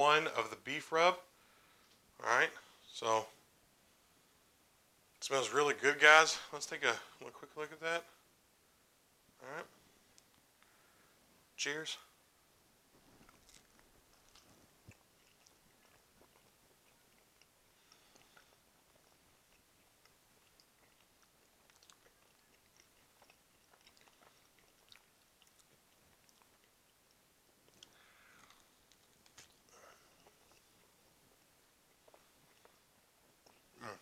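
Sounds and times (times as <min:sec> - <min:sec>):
man chewing food: 0:12.8 - 0:34.0.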